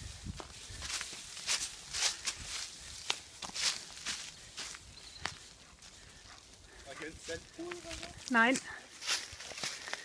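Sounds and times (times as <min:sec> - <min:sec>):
footsteps crunching through dry leaves: 0:00.0 - 0:10.0.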